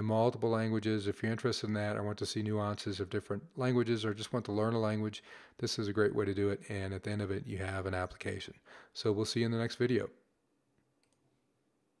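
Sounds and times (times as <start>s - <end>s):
man's voice: 0.0s - 10.1s
computer mouse clicks: 11.0s - 11.3s.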